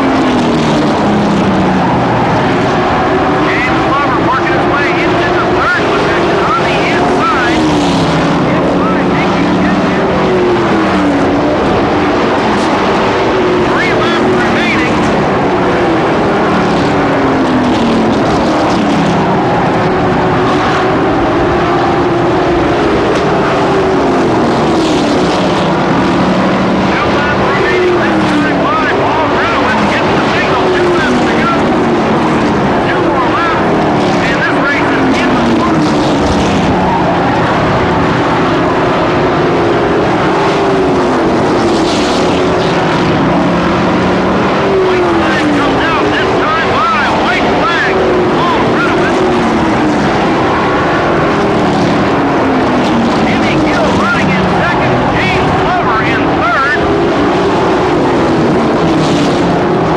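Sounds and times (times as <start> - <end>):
race truck engines passing: 0.0 - 59.9.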